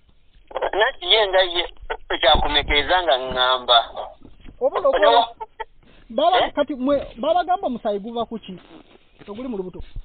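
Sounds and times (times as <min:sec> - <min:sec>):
person speaking over telephone: 0:00.5 - 0:05.3.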